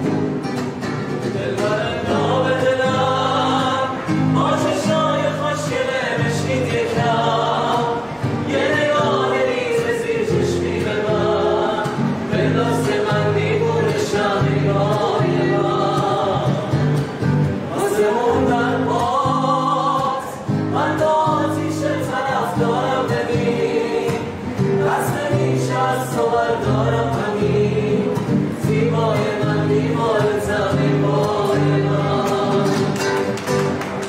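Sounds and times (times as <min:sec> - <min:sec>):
guitars: 0:00.0 - 0:34.0
men singing together: 0:01.3 - 0:33.3.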